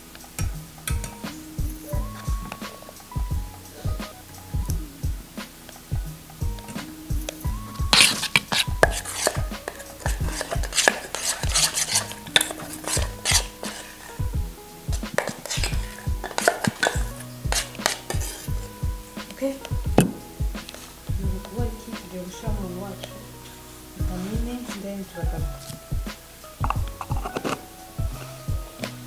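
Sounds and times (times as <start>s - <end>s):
background music: 0.0s - 29.0s
metal spoon scraping steel bowl: 7.9s - 14.2s, 15.1s - 18.6s, 27.0s - 27.7s.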